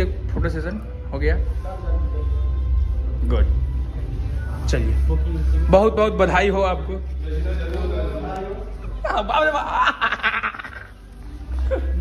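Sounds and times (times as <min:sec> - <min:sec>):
people laughing: 0:07.2 - 0:12.0.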